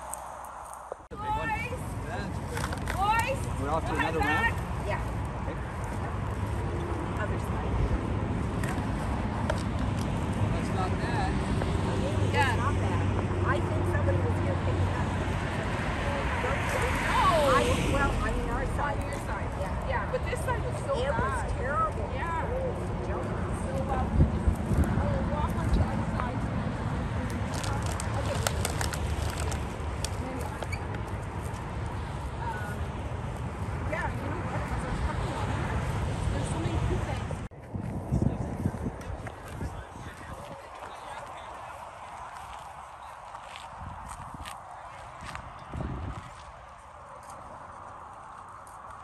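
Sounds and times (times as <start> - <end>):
highway traffic rumble: 0.0 - 49.0
passing vehicle engine hum: 0.0 - 49.0
wind: 0.0 - 49.0
plastic bags crinkling: 27.5 - 30.1
faint voices: 33.8 - 48.1.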